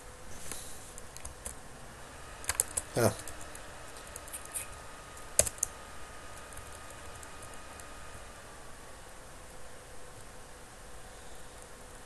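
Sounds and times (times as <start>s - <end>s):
keyboard keystrokes: 5.4s - 5.7s.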